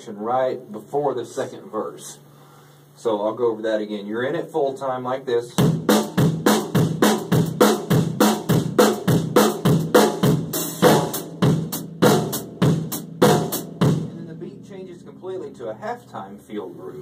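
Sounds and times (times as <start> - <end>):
drum kit groove: 5.4 - 17.0.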